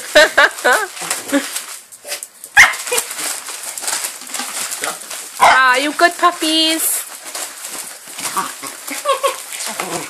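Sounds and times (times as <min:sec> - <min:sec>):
wrapping paper tearing: 0:00.0 - 0:10.0
small dog barking: 0:02.6 - 0:03.1, 0:05.4 - 0:05.7.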